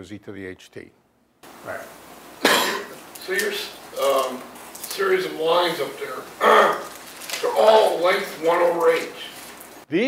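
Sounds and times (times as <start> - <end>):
person coughing: 2.4 - 3.0, 6.4 - 6.9.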